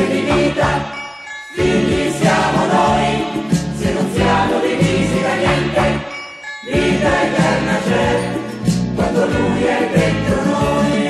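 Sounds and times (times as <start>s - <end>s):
instrumental backing with bass: 0.0s - 1.0s, 1.6s - 6.1s, 6.7s - 11.0s
choir singing: 0.0s - 11.0s.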